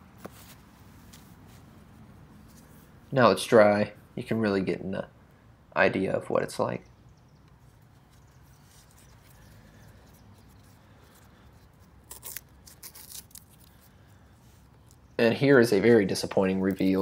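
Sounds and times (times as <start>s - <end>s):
masking tape peeling: 7.8s - 15.0s.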